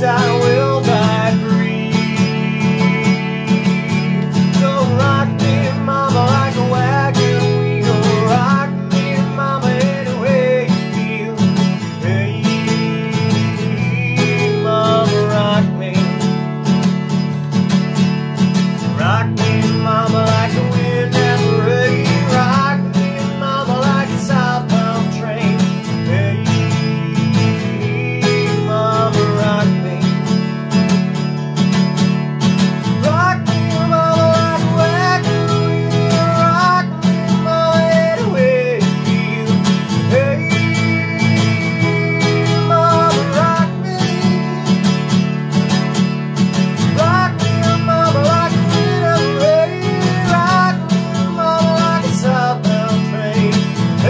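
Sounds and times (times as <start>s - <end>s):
acoustic guitar strumming: 0.0s - 54.0s
wordless sung melody: 0.0s - 54.0s.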